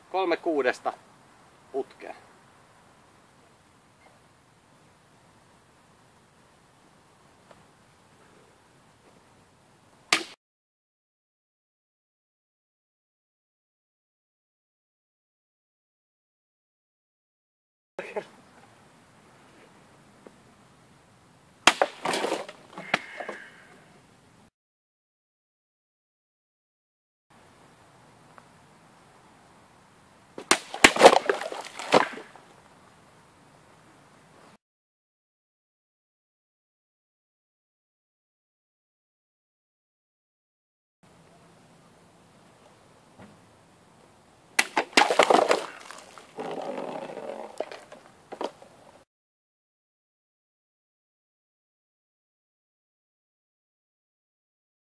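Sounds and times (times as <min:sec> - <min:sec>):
sword cutting plastic bottles: 0:21.7 - 0:22.9, 0:30.4 - 0:32.3, 0:44.6 - 0:48.0
water splashing: 0:30.5 - 0:32.3, 0:44.6 - 0:46.5.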